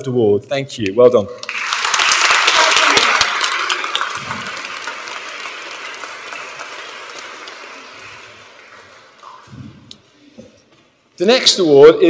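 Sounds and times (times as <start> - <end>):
audience clapping: 1.4 - 9.6.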